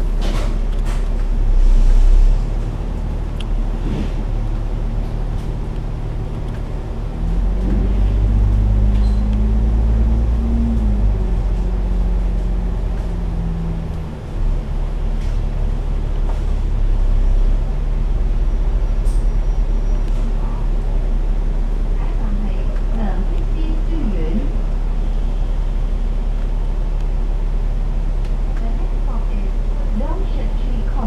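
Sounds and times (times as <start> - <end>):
bus engine drone: 0.0 - 31.0.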